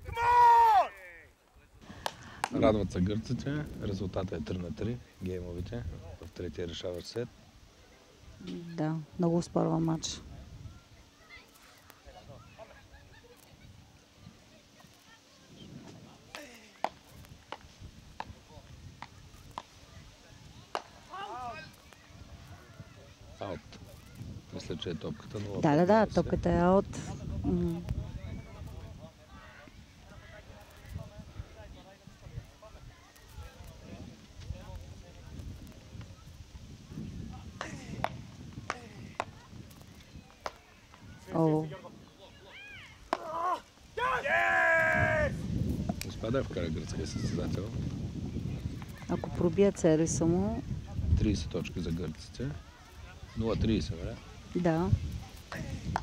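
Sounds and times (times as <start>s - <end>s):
loud yell: 0.0s - 1.3s, 42.5s - 45.4s
players shouting: 0.0s - 1.3s, 20.8s - 21.9s, 42.4s - 45.4s.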